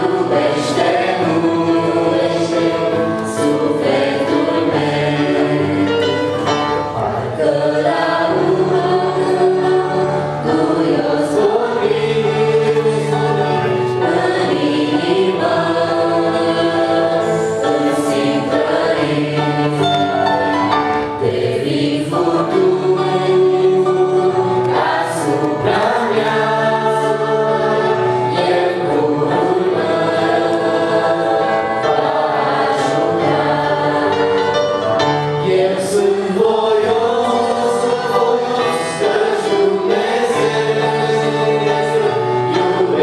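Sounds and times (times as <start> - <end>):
digital piano chords: 0.0 - 43.0
group singing through microphones: 0.0 - 43.0.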